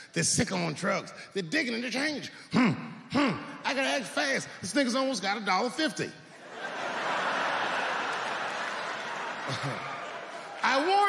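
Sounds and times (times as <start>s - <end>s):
audience laughing and clapping: 6.3s - 11.0s.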